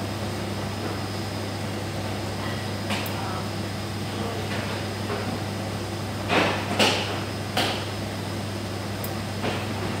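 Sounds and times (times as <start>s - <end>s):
machinery humming with whine: 0.0s - 10.0s.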